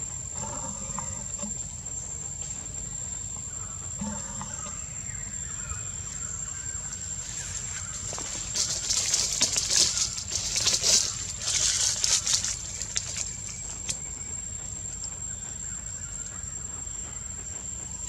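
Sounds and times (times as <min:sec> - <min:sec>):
high-pitched insect drone: 0:00.0 - 0:18.0
crackling rustle: 0:06.8 - 0:14.4.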